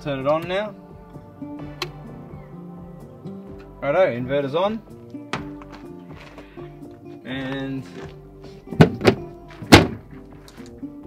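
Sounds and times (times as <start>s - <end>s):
switch cabinet thunks: 8.8s - 10.1s.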